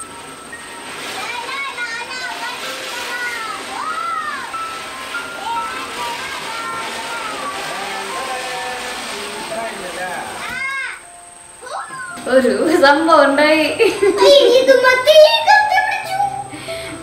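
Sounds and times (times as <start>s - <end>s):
background music: 0.0s - 17.0s
children's excited voices: 1.2s - 4.6s, 5.3s - 9.0s, 11.6s - 12.3s, 14.0s - 16.5s.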